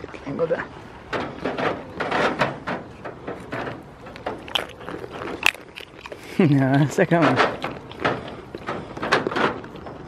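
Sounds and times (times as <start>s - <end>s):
goat nibbling and mouthing: 3.3s - 10.0s.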